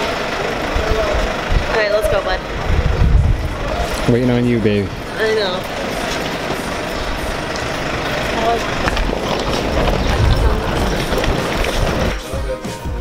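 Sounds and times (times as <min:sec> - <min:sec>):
street traffic: 0:00.0 - 0:13.0
vehicle engine running: 0:00.0 - 0:13.0.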